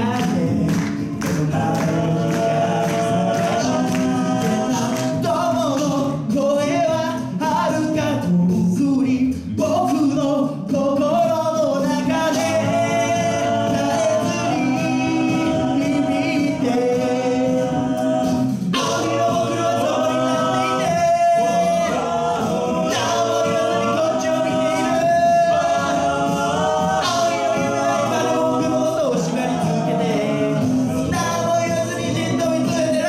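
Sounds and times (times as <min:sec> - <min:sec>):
male a cappella group singing: 0:00.0 - 0:33.0.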